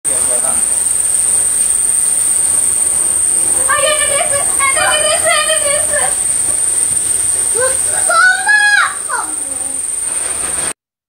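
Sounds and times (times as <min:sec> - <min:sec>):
firework fountain hissing: 0:00.0 - 0:10.8
high whine: 0:00.0 - 0:10.8.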